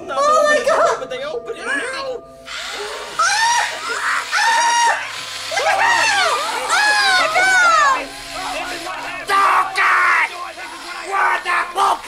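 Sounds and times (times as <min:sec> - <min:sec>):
person screaming: 0:03.2 - 0:08.0.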